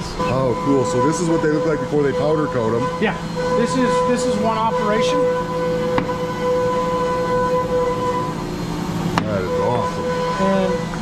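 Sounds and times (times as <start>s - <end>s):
machine hum with high whine: 0.0s - 11.0s.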